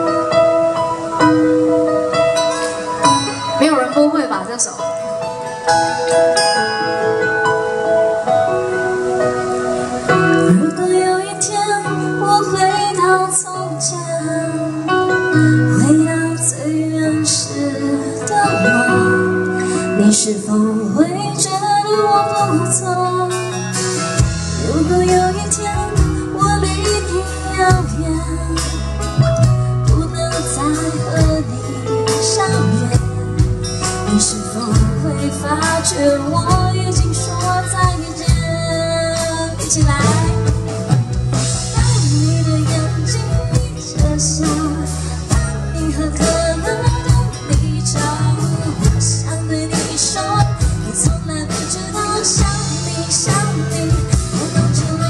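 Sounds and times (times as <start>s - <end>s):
band with guitar and drums: 0.0s - 55.0s
woman singing into a microphone: 9.8s - 55.0s.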